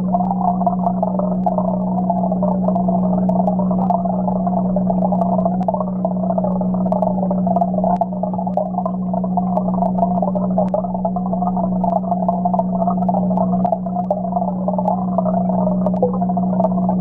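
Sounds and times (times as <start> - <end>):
aquarium pump humming: 0.0 - 17.0
bubbling churning water: 0.0 - 17.0
faint ticks: 0.0 - 17.0.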